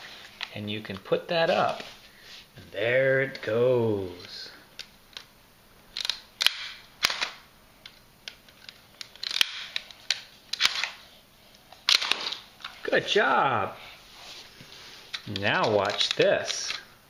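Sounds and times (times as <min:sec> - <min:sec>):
plastic toy mechanism clicking: 0:05.9 - 0:11.0, 0:15.1 - 0:16.9.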